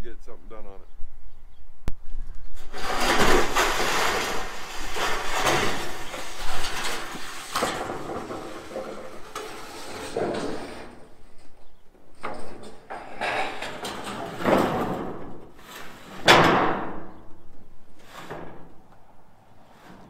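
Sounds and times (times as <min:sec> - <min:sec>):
metal roofing sheet scraping and rattling: 0:02.5 - 0:20.0
metal sheet clattering onto frame: 0:02.6 - 0:11.0, 0:12.2 - 0:17.2.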